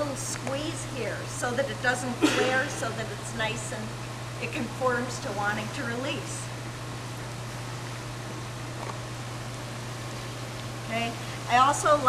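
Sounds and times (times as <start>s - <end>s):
constant low hum: 0.0s - 12.0s
steady hiss: 0.0s - 12.0s.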